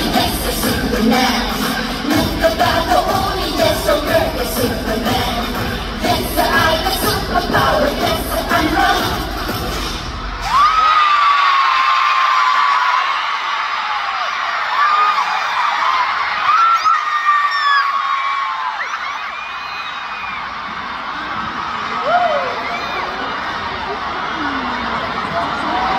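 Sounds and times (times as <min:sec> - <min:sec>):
loud pop music: 0:00.0 - 0:11.0
crowd cheering: 0:10.2 - 0:25.9
high-pitched screams: 0:10.4 - 0:13.2, 0:14.2 - 0:20.5.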